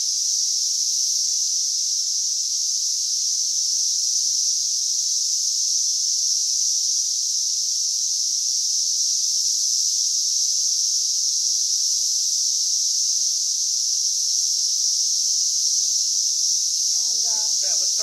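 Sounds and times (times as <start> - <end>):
cicadas droning: 0.0 - 18.0.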